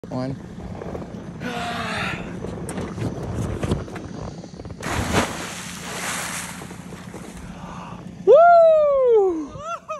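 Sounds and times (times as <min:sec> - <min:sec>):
wind rushing on microphone: 0:00.5 - 0:06.0.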